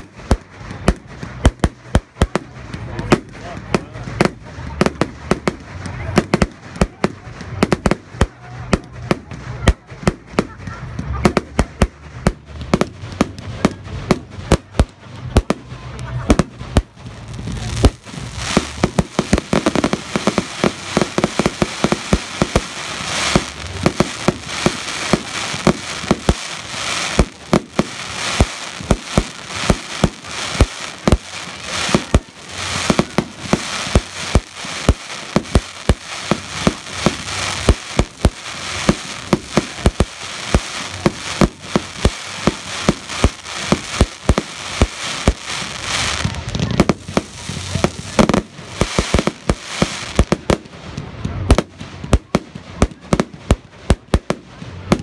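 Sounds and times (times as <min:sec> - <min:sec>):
fireworks bangs: 0:00.0 - 0:55.0
fireworks crackle: 0:00.0 - 0:55.0.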